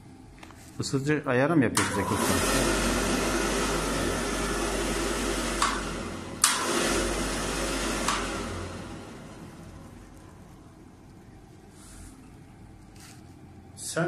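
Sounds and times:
boiler burner blower rushing: 0:01.6 - 0:10.9
low hum: 0:01.8 - 0:13.9.

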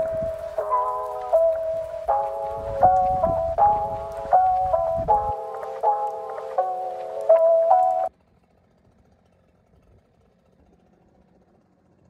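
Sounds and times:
background music: 0:00.0 - 0:08.1.

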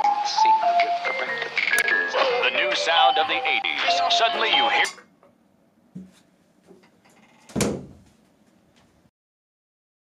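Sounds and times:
electronic music with synth melody: 0:00.0 - 0:04.9.

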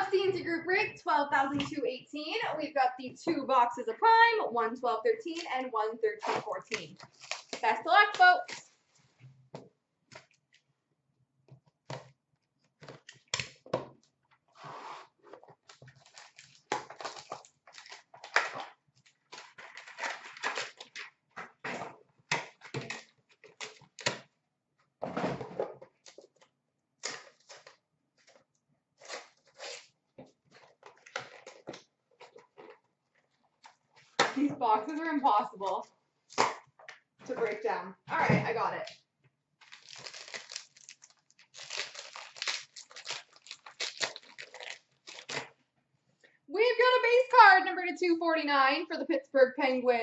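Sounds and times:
foil wrapper crinkling: 0:06.6 - 0:08.7, 0:15.6 - 0:21.2, 0:39.6 - 0:45.6.

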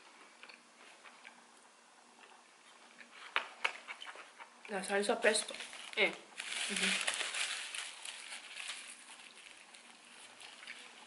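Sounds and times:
chewing fried potato: 0:00.0 - 0:04.8, 0:06.6 - 0:11.0.

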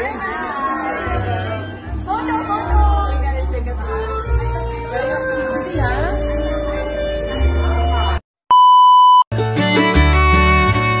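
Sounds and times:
background music: 0:00.0 - 0:08.2, 0:09.3 - 0:11.0
high-pitched beep: 0:08.5 - 0:09.3.

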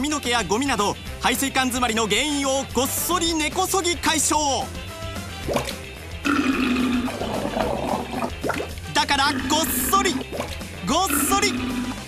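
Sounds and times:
water gurgling down drain: 0:06.3 - 0:10.5.

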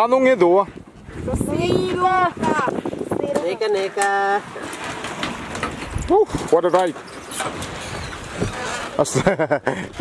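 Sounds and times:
propeller churning water: 0:00.0 - 0:10.0.

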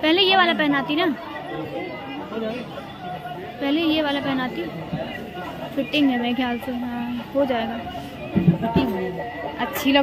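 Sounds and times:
quiet background voices talking: 0:00.0 - 0:10.0.

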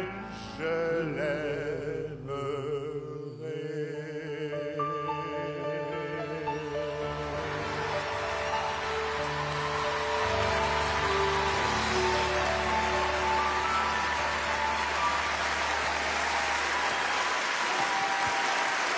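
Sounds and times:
grand piano and band: 0:00.0 - 0:18.9
audience applause: 0:06.7 - 0:18.9.

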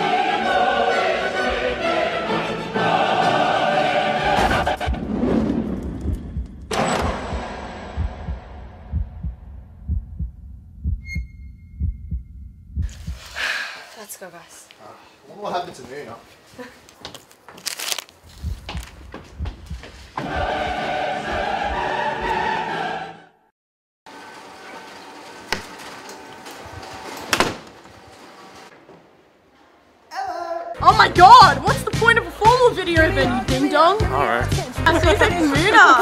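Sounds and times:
heartbeat double thumps: 0:04.4 - 0:13.3, 0:18.3 - 0:21.8.

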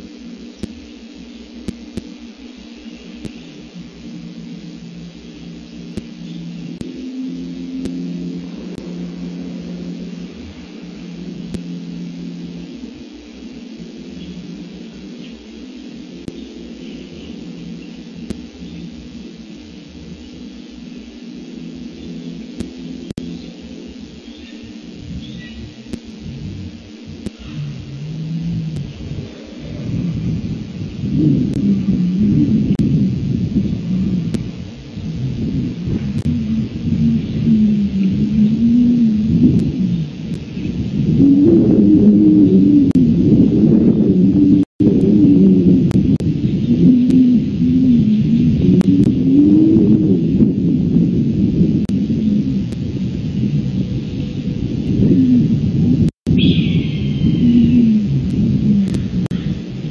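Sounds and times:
low rumble: 0:00.0 - 0:59.9.

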